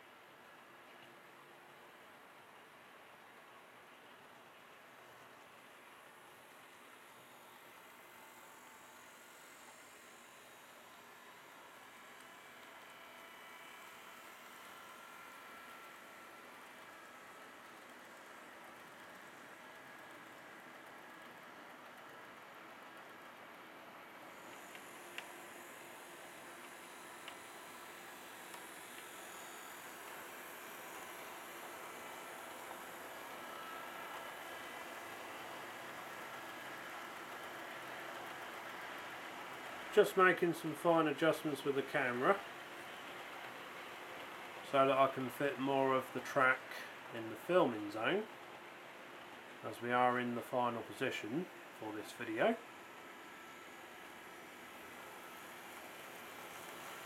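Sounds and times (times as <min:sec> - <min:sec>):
model train motors whirring: 0:00.0 - 0:57.0.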